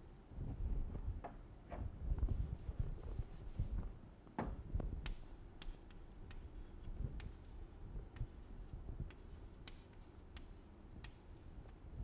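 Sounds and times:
chalk tapping and scratching: 5.0s - 11.8s.

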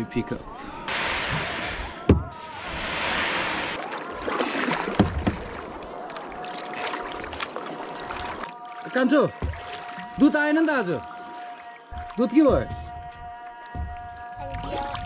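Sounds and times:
paddle splashing in water: 0.9s - 15.0s.

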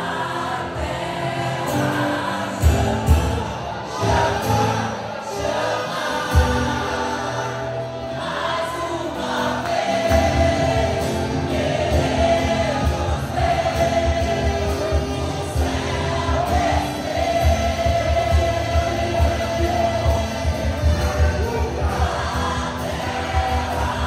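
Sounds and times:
acoustic guitar: 0.0s - 24.0s
bass: 0.0s - 24.0s
group singing: 0.0s - 24.0s
keyboard: 0.0s - 24.0s.

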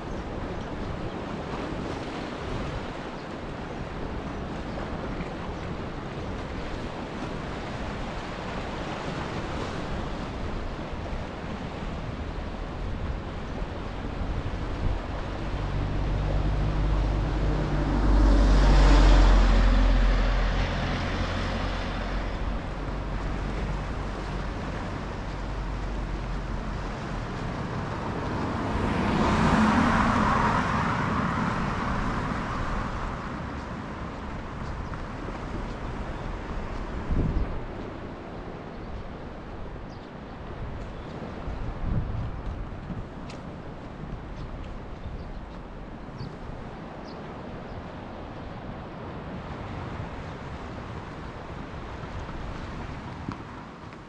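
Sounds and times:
waves on rocky shore: 0.0s - 54.0s
wind on microphone: 0.0s - 54.0s
vehicle engine rumble: 11.0s - 54.0s
car tyre noise passing: 12.0s - 38.4s.

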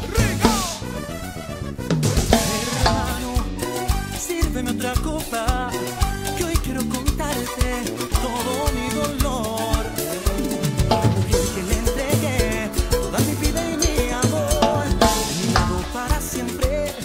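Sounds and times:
latin dance music: 0.0s - 17.0s
cowbell: 4.8s - 17.0s.

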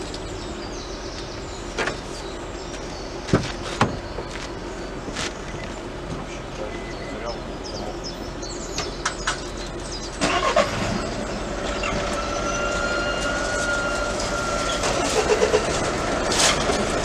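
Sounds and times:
barrier motor whine: 0.0s - 17.0s
car engines idling: 0.0s - 17.0s.

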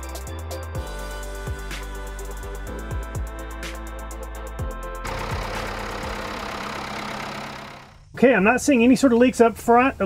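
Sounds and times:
background music with steady beat: 0.0s - 6.5s
tractor engine running: 5.0s - 8.2s.

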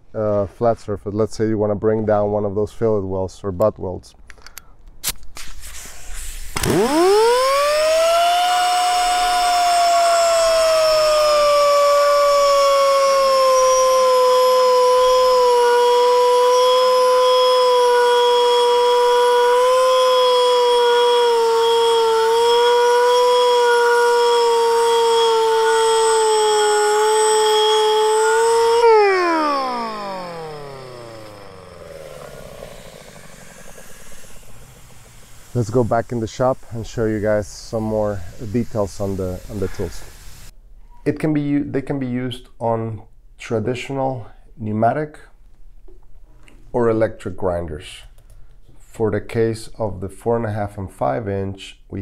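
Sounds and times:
angle grinder cutting metal: 6.5s - 40.5s.

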